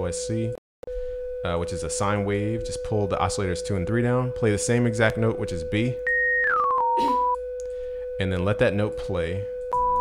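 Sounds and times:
sine tone stepping down: 0.0 - 10.0
steady sine reference tone: 0.0 - 10.0.

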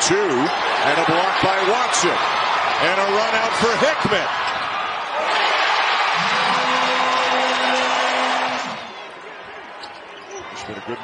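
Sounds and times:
crowd cheering loudly: 0.0 - 11.0.

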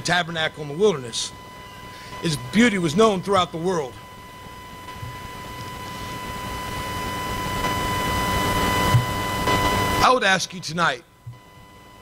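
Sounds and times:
high electrical whine with hiss: 0.0 - 12.0.

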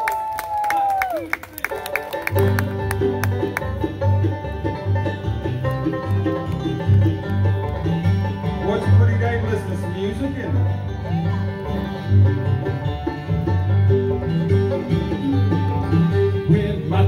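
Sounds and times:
hand clapping: 0.0 - 3.9, 5.5 - 8.2
bluegrass band playing: 1.3 - 17.0.

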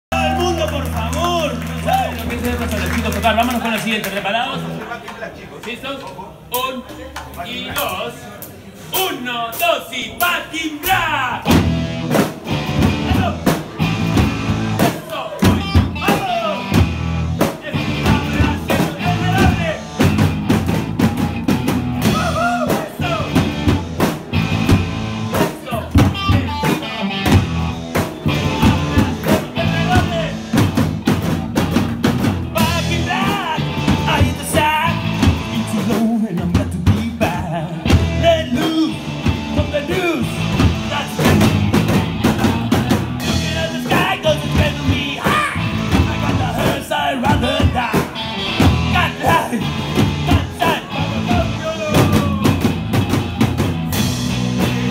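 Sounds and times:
live rock band playing: 0.1 - 4.8, 11.4 - 54.9
drum kit beat: 10.2 - 54.9
electric guitars: 11.4 - 54.9.

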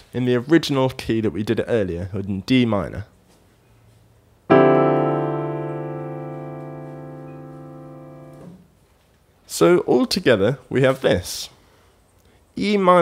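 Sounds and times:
piano chord ringing: 4.5 - 8.6.

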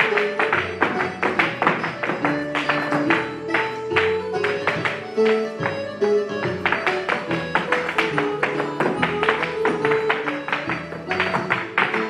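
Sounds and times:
hard shoes tapping on wooden floor: 0.0 - 12.0
traditional dance tune: 0.0 - 12.0.

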